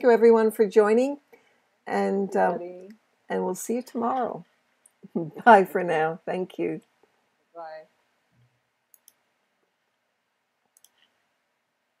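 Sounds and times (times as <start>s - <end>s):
faint sharp clicks: 8.4s - 9.2s, 10.7s - 11.2s.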